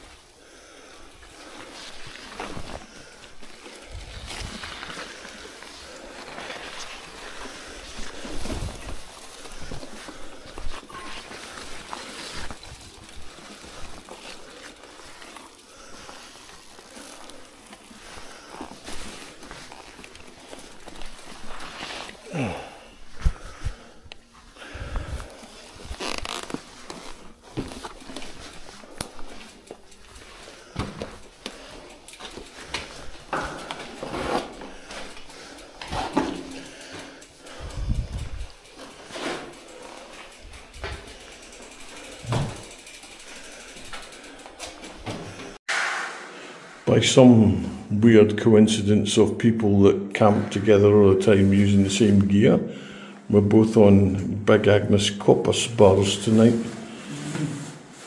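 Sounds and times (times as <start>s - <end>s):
bike knocking and rattling: 0.0s - 45.6s
rustling: 0.0s - 46.8s
footsteps: 1.5s - 37.1s.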